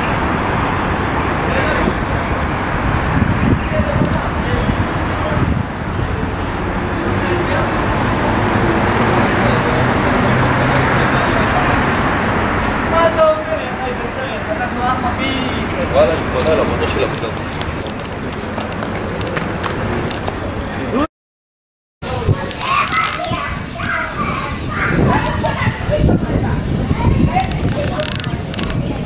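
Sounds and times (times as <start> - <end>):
street traffic going by: 0.0 - 21.1, 22.0 - 29.0
young child talking: 22.1 - 29.0.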